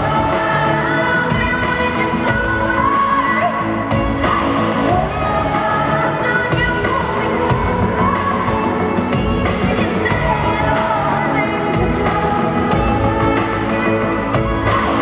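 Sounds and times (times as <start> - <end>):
full band playing pop: 0.0 - 15.0
person singing: 0.0 - 15.0.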